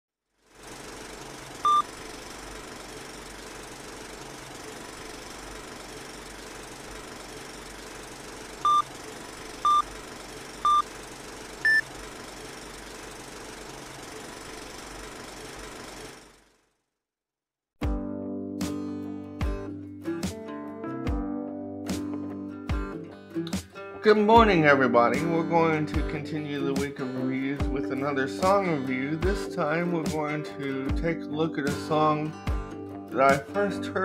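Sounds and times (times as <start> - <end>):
film projector whirring: 0.3 - 16.7
short beeps: 8.7 - 8.9.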